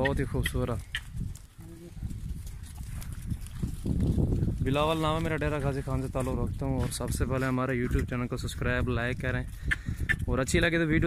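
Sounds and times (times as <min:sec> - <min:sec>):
goat hoof steps and shuffling: 0:00.6 - 0:08.2.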